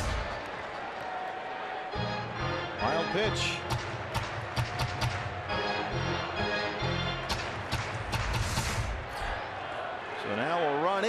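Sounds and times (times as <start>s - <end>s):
crowd cheering: 0.0s - 11.0s
music with fast beat over loudspeakers: 3.4s - 5.4s.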